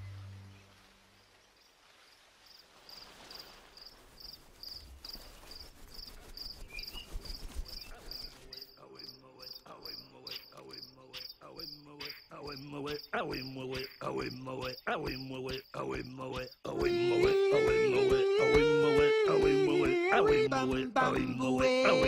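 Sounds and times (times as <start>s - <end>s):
insect chirping: 0.7s - 16.9s
bird calls: 4.2s - 16.6s.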